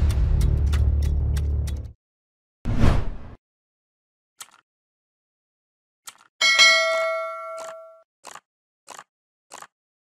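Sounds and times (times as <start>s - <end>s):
bell ding: 6.4s - 8.0s.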